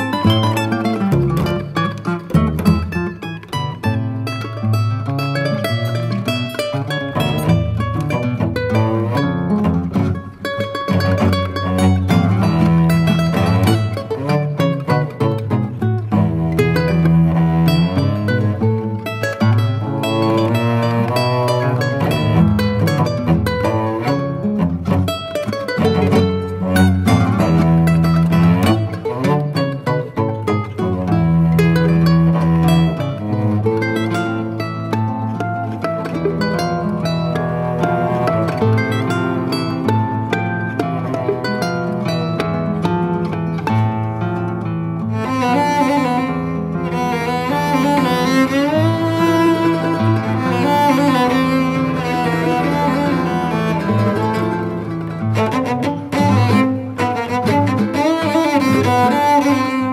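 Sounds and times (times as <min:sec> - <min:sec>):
plucked acoustic guitar music: 0:00.0 - 0:59.9.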